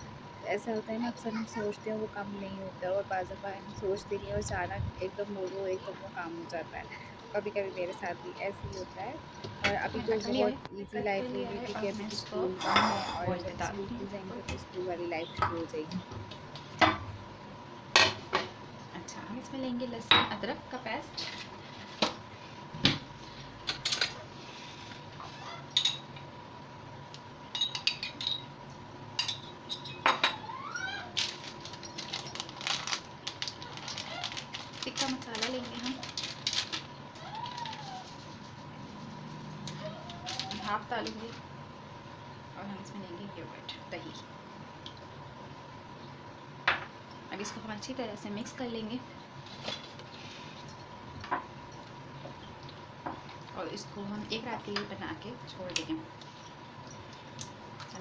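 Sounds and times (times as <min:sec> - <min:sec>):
faint background noise: 0:00.0 - 0:58.0
metal spoon clinking on glass: 0:27.5 - 0:28.5.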